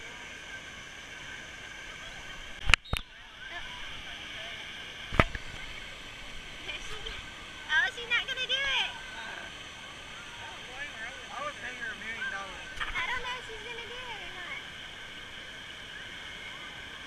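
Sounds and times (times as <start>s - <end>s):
crowd voices: 0.0s - 17.0s
steady rushing noise: 1.8s - 17.0s.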